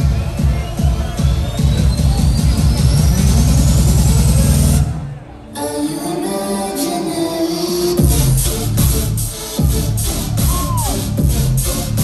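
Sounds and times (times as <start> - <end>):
rapidly pulsing bass: 0.0 - 5.1, 8.0 - 12.0
electronic dance music: 0.0 - 12.0.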